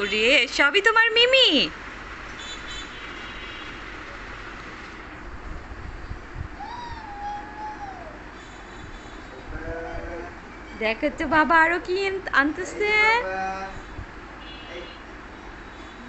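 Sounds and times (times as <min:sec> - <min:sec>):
child making meow-like call: 0:06.6 - 0:08.2.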